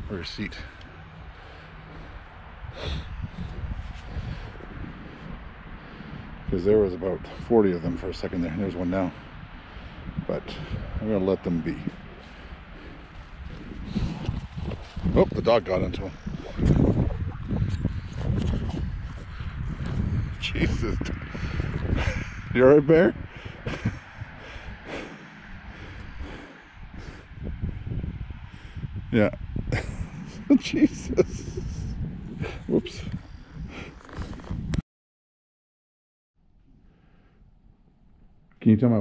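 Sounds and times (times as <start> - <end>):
wind rumbling on microphone: 0.0 - 34.8
camera handling rumble: 13.5 - 15.2, 16.2 - 20.1, 33.9 - 34.8.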